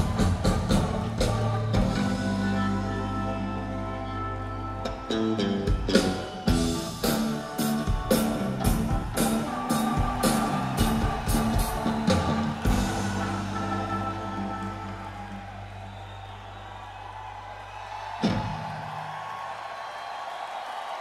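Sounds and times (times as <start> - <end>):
live rock band: 0.0 - 15.7
drum and cymbal hits: 5.7 - 14.2.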